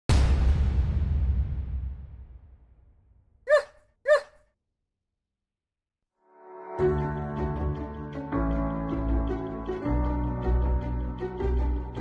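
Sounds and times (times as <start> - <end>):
small dog yip: 3.5 - 4.4.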